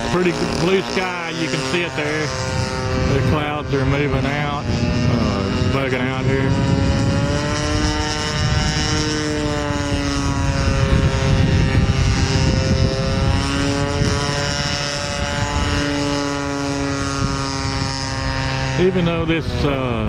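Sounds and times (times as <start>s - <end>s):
model airplane engine overhead: 0.0s - 20.0s.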